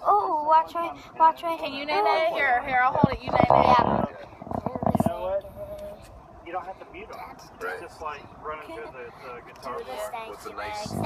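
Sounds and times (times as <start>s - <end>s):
person's voice buzzing rattle: 2.9s - 5.2s.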